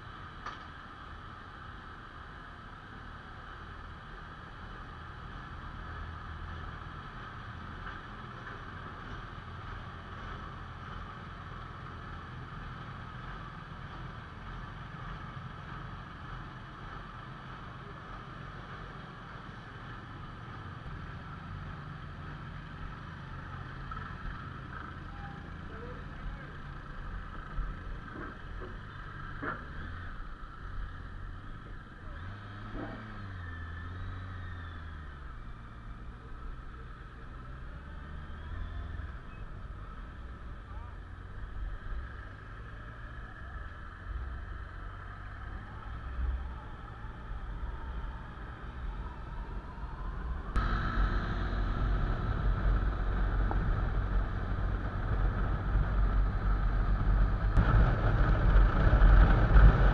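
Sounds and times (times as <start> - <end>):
engines idling: 0.0 - 59.9
motorbikes moving off: 0.0 - 59.9.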